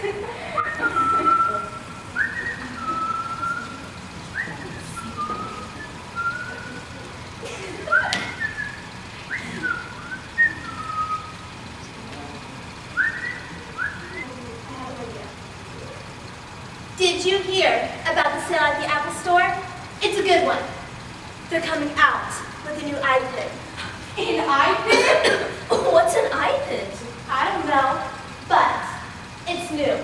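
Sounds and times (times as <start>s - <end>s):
person whistling a tune: 0.6s - 7.0s, 7.9s - 11.4s, 12.9s - 14.5s.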